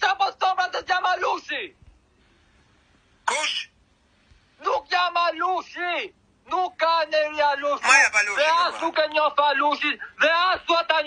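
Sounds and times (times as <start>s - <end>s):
faint hiss: 1.9s - 4.9s.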